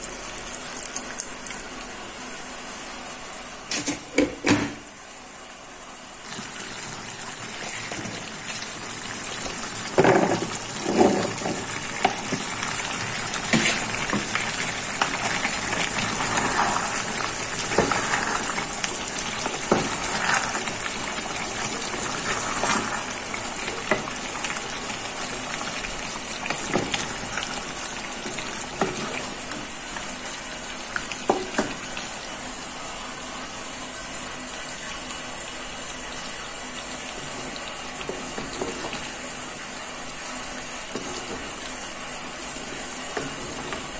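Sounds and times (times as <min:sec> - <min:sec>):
stew bubbling in a pan: 0:06.2 - 0:33.2
wooden spatula scraping a pan: 0:16.1 - 0:17.2.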